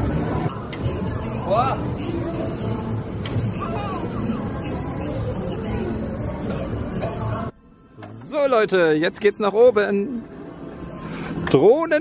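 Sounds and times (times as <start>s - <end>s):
outdoor background noise: 0.0s - 12.0s
voices: 0.4s - 7.6s.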